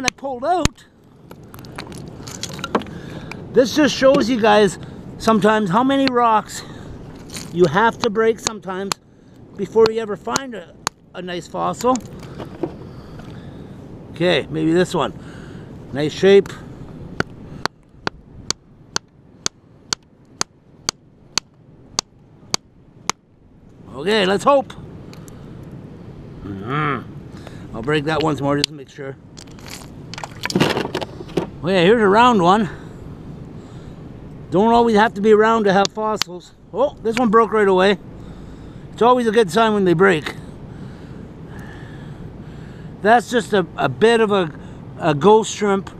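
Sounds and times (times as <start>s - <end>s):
rocks clinking and clattering: 1.3s - 3.0s, 7.2s - 8.5s, 29.4s - 31.5s
hammer tapping on rock: 9.8s - 11.0s, 17.2s - 23.2s.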